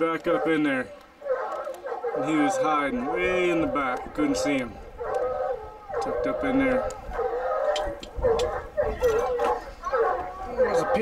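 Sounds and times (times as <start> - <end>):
hounds baying: 0.0 - 11.0.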